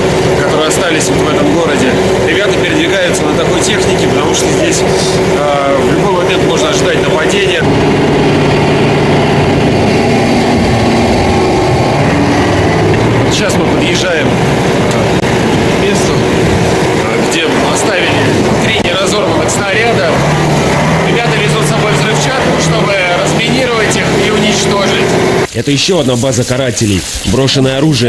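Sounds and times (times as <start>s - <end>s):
armoured vehicle engine drone: 0.0s - 25.5s.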